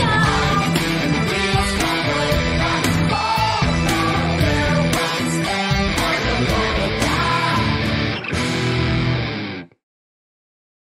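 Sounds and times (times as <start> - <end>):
electric guitar over backing track: 0.0 - 9.8.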